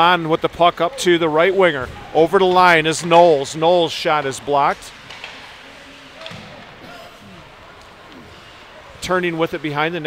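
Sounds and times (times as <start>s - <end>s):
ice hockey play noise: 0.0s - 10.0s.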